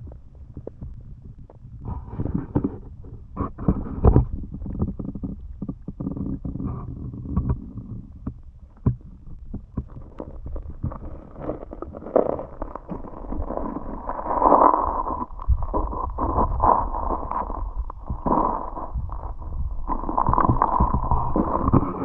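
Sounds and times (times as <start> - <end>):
underwater knocks and clicks: 0.0 - 22.0
underwater rumble of moving water: 0.0 - 22.0.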